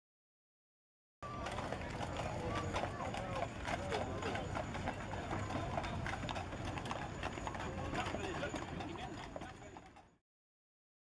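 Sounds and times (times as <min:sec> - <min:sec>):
hooves clip-clopping on pavement: 0:01.2 - 0:10.2.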